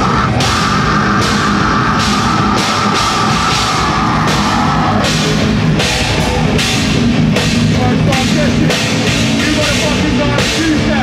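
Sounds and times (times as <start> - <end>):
heavy metal band playing: 0.0 - 11.0
cymbal crashes: 0.3 - 10.8.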